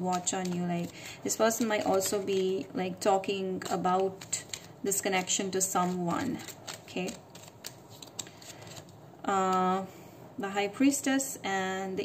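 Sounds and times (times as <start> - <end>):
cards sliding: 3.7 - 9.0.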